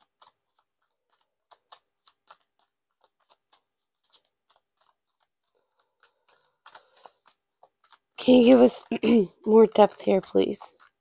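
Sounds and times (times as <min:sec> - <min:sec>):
cards clicking and slapping: 0:00.0 - 0:11.0.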